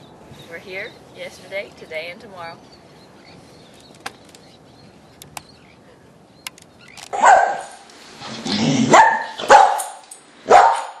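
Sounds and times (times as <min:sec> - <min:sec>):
animal barking: 0:07.1 - 0:11.0.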